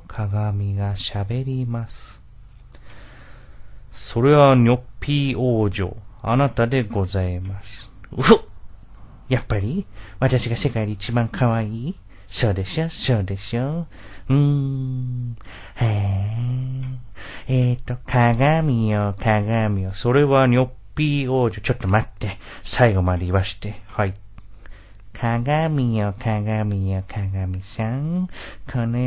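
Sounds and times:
person speaking: 0.0 - 2.3, 3.9 - 8.7, 9.3 - 24.5, 25.1 - 29.0.

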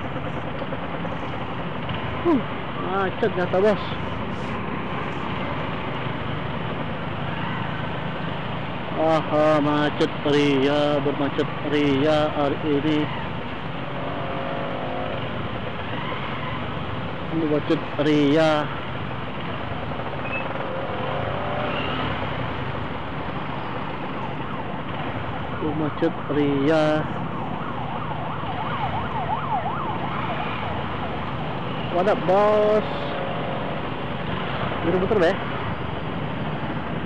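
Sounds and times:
motorcycles and scooters idling: 0.0 - 11.1
motorcycle engines idling: 0.0 - 28.4
traffic noise hiss: 1.0 - 13.0.

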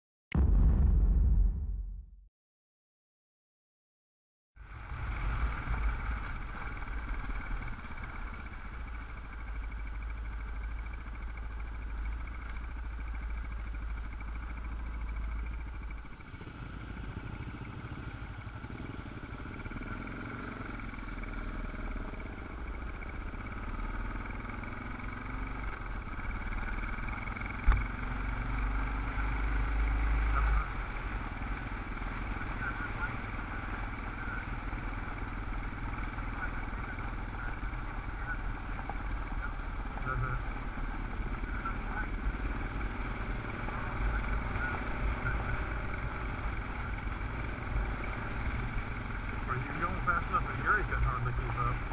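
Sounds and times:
sharp knock: 0.4 - 2.2
motorcycle engine running: 4.6 - 51.9.

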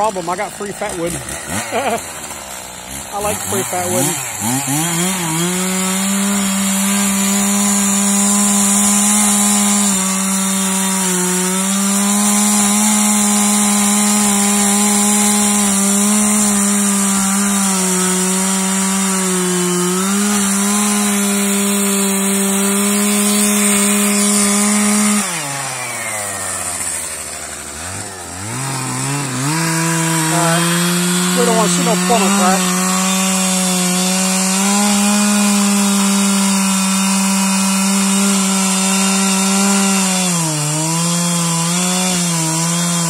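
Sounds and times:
chainsaw cutting wood: 0.0 - 43.0.

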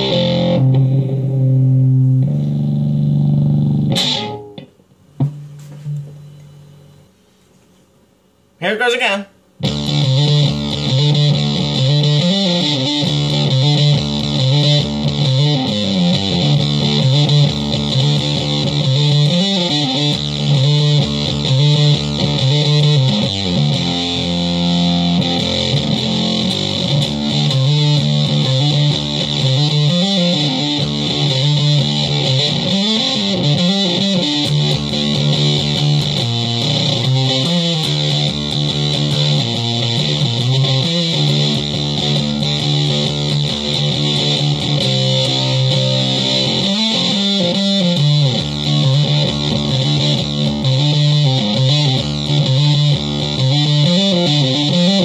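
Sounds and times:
fuzzed electric guitar riffs: 0.0 - 6.9, 8.6 - 55.0.

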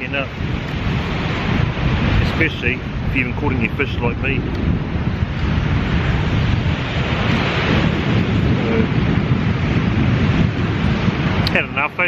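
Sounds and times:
surf washing on beach: 0.0 - 12.0
wind buffeting microphone: 0.0 - 12.0.

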